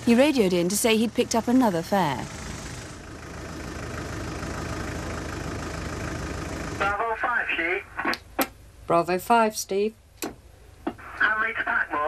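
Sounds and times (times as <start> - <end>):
car engine idling: 0.0 - 7.8
voice over two-way radio: 6.8 - 8.1, 11.0 - 12.0.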